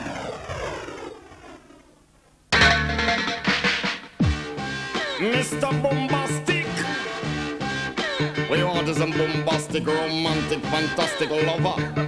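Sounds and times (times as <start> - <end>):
falling whoosh sound effect: 0.0 - 1.8.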